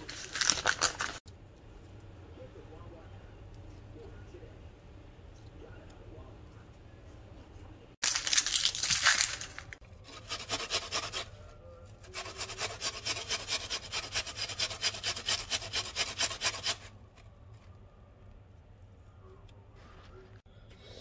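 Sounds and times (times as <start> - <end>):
onion grated on metal grater: 10.0 - 11.3, 12.1 - 16.9.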